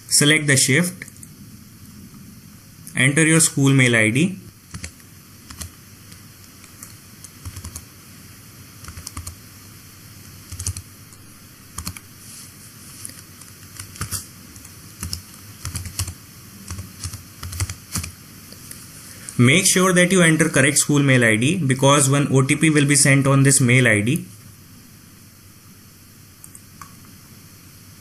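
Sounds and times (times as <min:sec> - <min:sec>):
faint steady hiss: 0:00.0 - 0:28.0
computer keyboard typing: 0:04.7 - 0:07.9, 0:08.8 - 0:09.4, 0:10.4 - 0:11.2, 0:11.8 - 0:12.1, 0:13.1 - 0:18.2.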